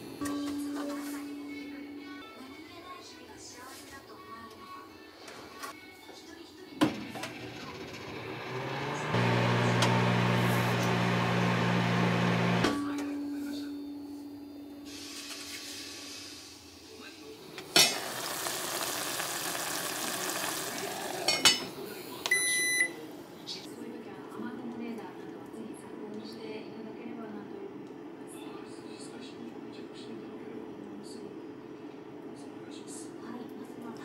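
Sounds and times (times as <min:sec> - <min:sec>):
microwave humming: 0:06.8 - 0:15.0, 0:17.4 - 0:23.4.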